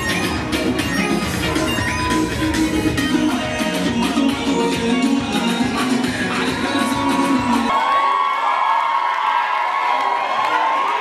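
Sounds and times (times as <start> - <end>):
dance music with heavy bass: 0.0 - 7.7
audience cheering: 6.4 - 11.0.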